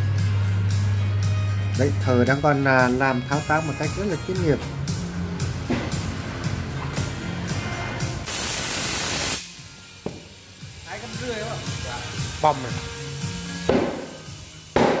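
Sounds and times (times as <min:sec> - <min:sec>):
compressed air hissing into tyre: 0:08.2 - 0:15.0.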